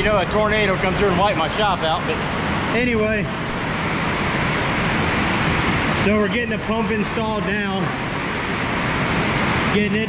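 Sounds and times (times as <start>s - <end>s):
heavy rain on a steel roof: 7.8s - 10.0s.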